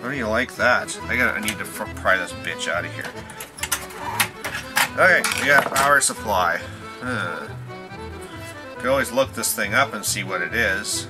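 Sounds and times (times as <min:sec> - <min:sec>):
background music: 0:00.0 - 0:11.0
plastic clips snapping: 0:03.0 - 0:06.0.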